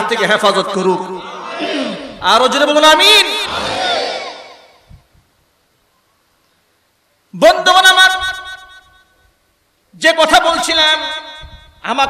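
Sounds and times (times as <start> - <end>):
man speaking over loudspeakers: 0.0 - 3.7, 7.3 - 8.8, 10.0 - 12.0.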